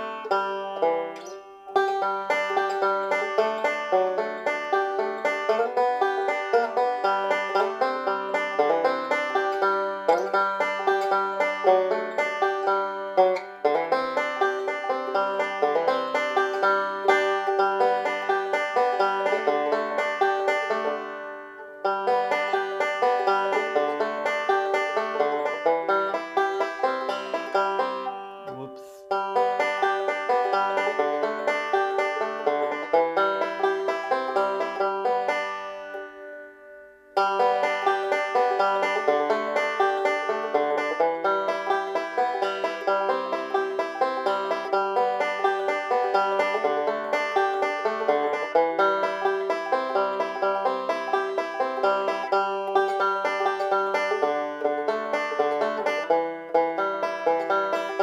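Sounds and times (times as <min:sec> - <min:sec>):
banjo picking: 0:00.0 - 0:58.0.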